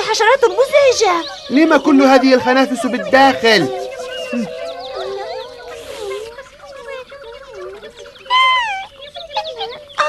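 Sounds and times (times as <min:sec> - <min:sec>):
steady held tone: 0:02.5 - 0:07.0.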